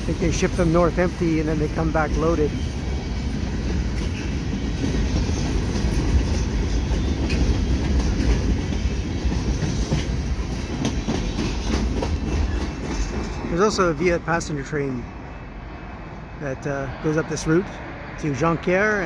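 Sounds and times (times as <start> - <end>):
freight train rolling past: 0.0 - 19.0
wheels clicking over rail joints: 3.3 - 13.9.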